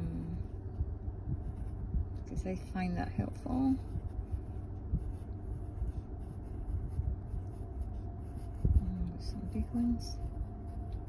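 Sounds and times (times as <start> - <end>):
pencil scratching on paper: 3.3 - 11.0.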